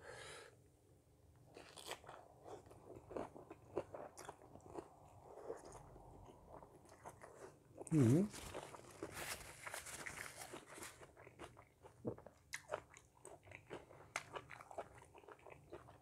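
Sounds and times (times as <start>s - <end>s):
chewing with wet clicks and crunches: 1.5s - 7.9s, 10.0s - 16.0s.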